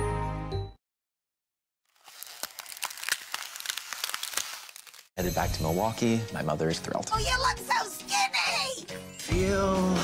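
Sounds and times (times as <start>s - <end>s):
ice crackling: 1.9s - 5.1s.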